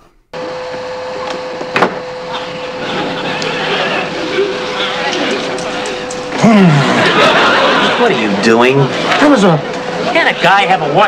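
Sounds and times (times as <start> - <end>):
hood hair dryer whirring: 0.4 - 11.0.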